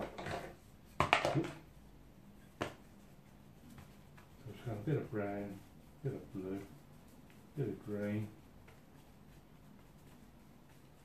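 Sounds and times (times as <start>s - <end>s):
paintbrush scrubbing: 0.4s - 1.0s, 1.6s - 11.0s.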